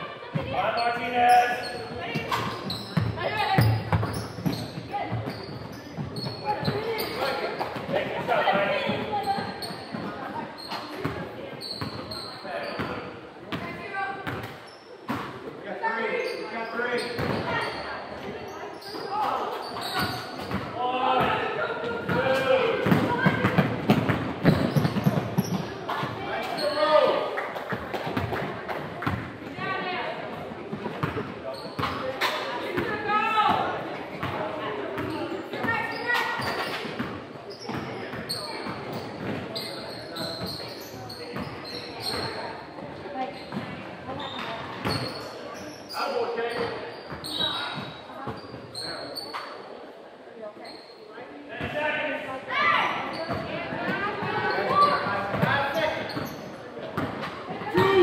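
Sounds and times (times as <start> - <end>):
people calling out and talking: 0.0 - 58.0.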